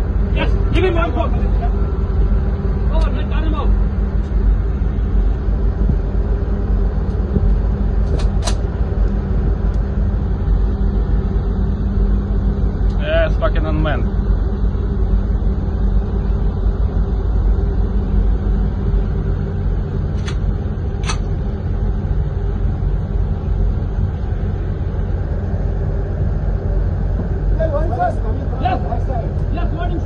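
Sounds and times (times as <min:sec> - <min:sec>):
ship engine rumble: 0:00.0 - 0:30.0.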